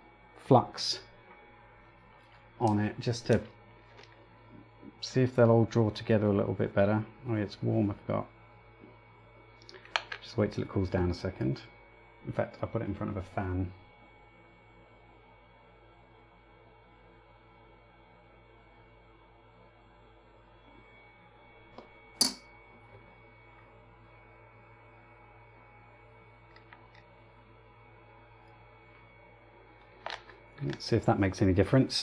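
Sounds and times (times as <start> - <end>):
faint room hum: 0.0 - 32.0.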